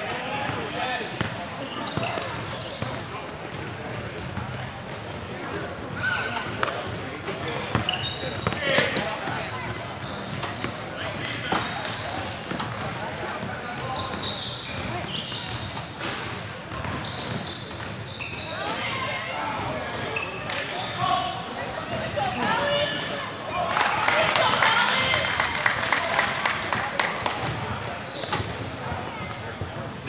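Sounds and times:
sneakers squeaking: 0.0 - 23.9, 26.8 - 30.0.

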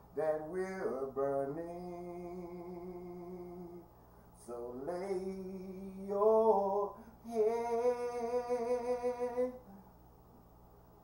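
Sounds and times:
man singing a cappella: 0.0 - 9.8.

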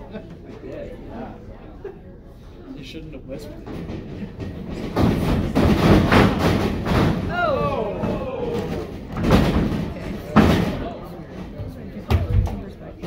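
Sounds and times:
crowd voices: 0.0 - 13.0
falling shout: 7.2 - 9.0.

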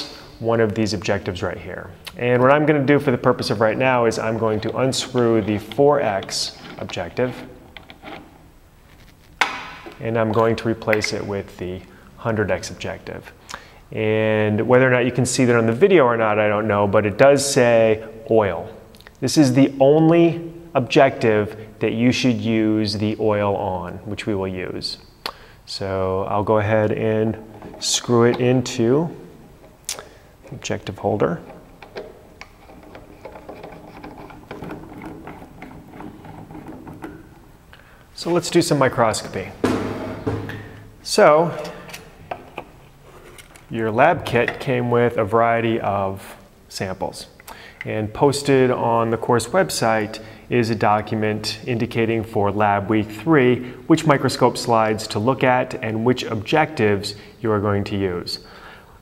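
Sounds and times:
faint steady hum: 0.0 - 59.0
small metal clicks and scrapes: 30.4 - 37.4.

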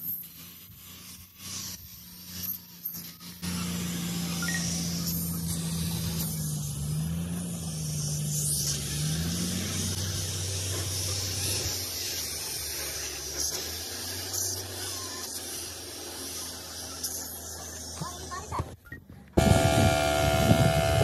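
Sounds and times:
spray gun hissing: 0.0 - 18.5
low hum: 19.4 - 21.0.

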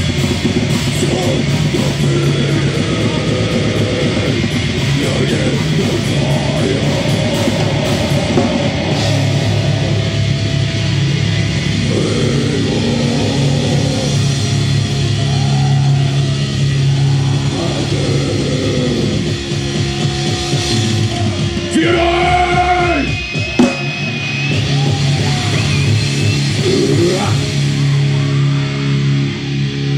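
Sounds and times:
bass guitar: 0.0 - 29.9
distorted electric guitars: 0.0 - 29.9
drums: 0.0 - 29.9.

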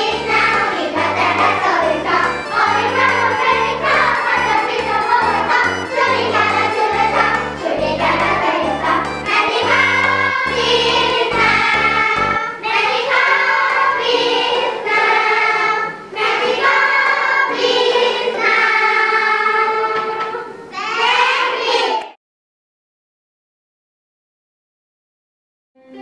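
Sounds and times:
backing track: 0.0 - 12.6
choir singing: 0.0 - 22.0.

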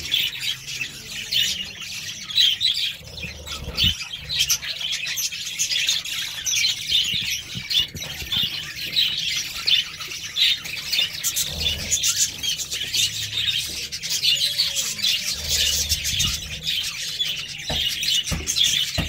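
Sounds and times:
budgerigars chirping: 0.0 - 19.0.

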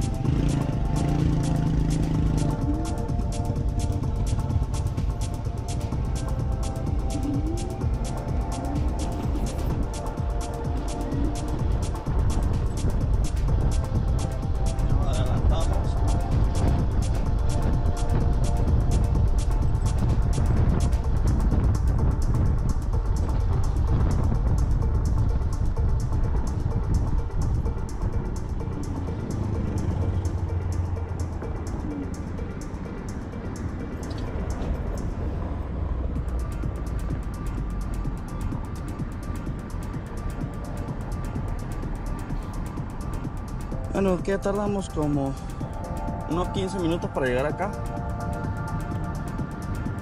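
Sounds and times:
background music with steady beat: 0.0 - 50.0
wind and road noise rumble: 0.0 - 50.0.

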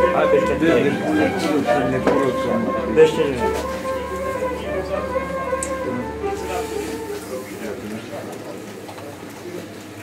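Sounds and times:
faint murmuring voices: 0.0 - 10.0.

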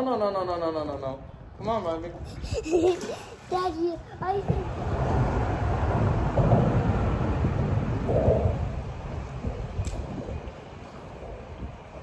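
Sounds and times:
low rumble: 4.4 - 12.0
sharp click: 9.8 - 10.0.

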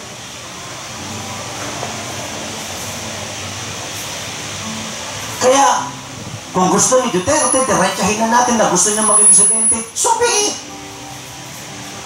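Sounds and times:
even hiss: 0.0 - 12.0.

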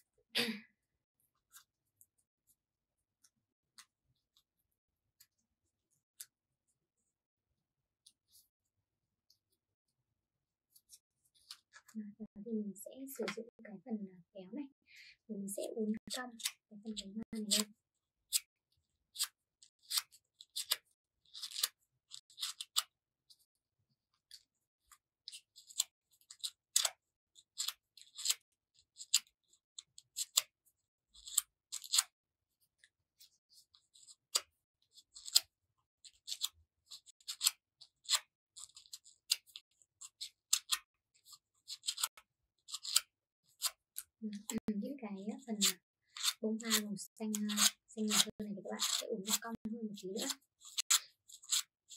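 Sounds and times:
scissor blade scraping paper: 16.0 - 18.5, 19.1 - 23.5, 24.2 - 32.2, 33.2 - 44.6, 45.3 - 51.9.

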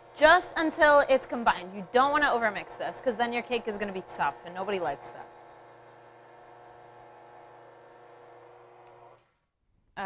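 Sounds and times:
stand mixer motor humming: 0.0 - 9.4.

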